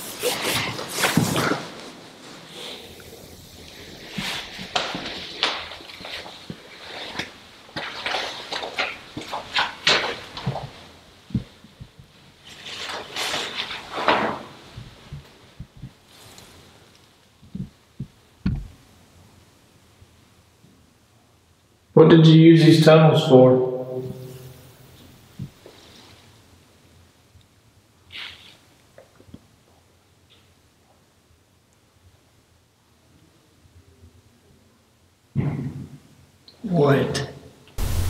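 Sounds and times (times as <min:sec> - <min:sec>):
clothing and gear rustling: 0:00.0 - 0:17.8, 0:25.3 - 0:26.4
soft thuds: 0:17.6 - 0:18.7.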